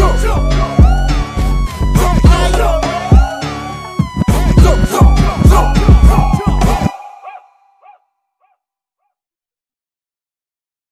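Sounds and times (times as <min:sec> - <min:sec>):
echoing bark-like yelp: 0:06.9 - 0:09.1.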